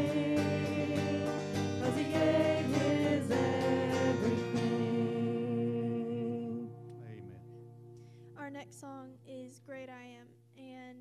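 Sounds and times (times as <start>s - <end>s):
women singing in harmony: 0.0s - 6.7s
electric guitar: 0.0s - 8.2s.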